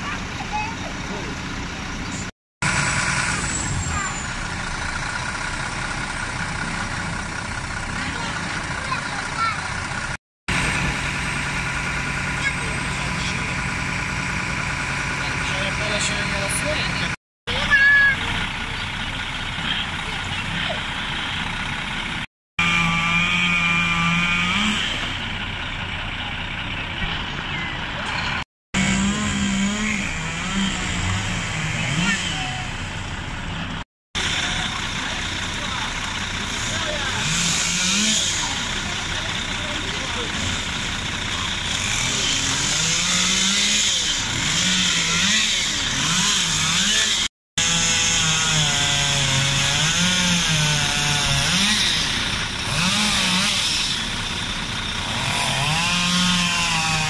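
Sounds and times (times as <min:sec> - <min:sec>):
voices talking: 0:00.0 - 0:02.3, 0:02.9 - 0:22.0, 0:25.4 - 0:28.4, 0:29.8 - 0:46.1
truck engine revving: 0:00.0 - 0:57.0.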